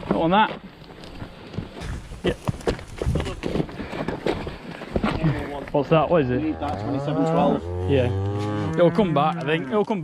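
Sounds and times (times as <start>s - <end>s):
cattle hooves shuffling: 0.0s - 10.0s.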